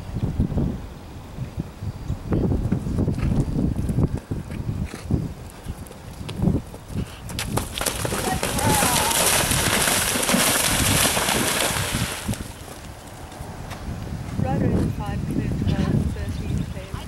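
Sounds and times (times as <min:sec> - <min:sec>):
horse hooves galloping on turf: 0:02.6 - 0:15.4
horse splashing through water: 0:07.4 - 0:12.8.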